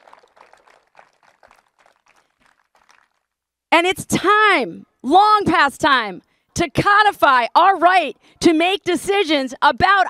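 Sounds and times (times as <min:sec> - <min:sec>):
crowd clapping: 0:00.0 - 0:03.4.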